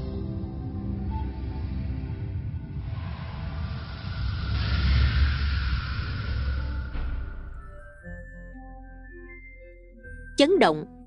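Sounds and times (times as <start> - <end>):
hiss: 2.8 - 7.3.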